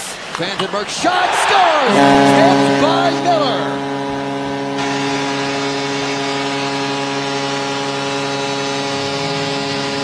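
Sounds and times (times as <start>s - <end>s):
crowd cheering and clapping: 0.0s - 2.2s
arena goal horn: 1.8s - 9.9s.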